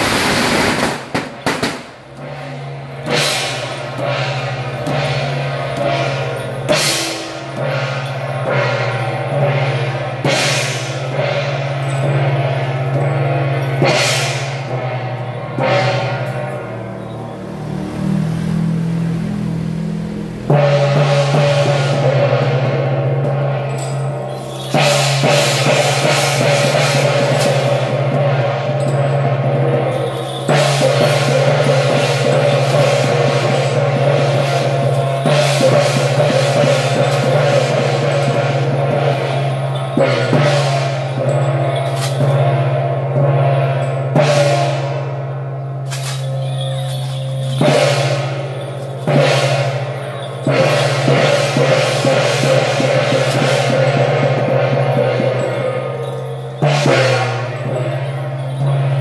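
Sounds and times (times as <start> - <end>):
drums and cymbals: 0.0 - 59.0
hand gong strikes: 2.2 - 17.0
low droning note: 14.7 - 22.2.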